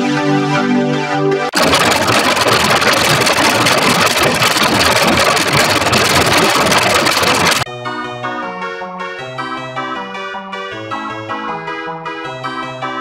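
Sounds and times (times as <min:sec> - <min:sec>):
harsh buzzing distortion: 0:01.6 - 0:07.7.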